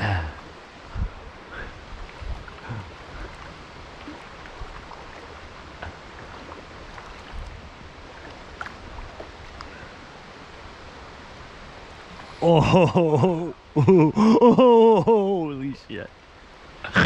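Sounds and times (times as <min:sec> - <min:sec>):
river water rushing: 0:00.0 - 0:17.0
faint clicks: 0:09.5 - 0:09.8.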